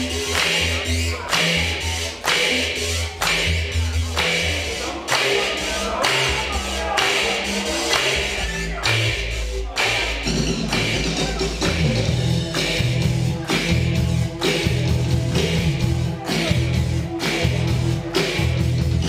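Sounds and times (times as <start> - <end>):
low synth bass line: 0.0 - 19.0
steady drum beat: 1.3 - 19.0
live synth-rock band: 10.2 - 19.0.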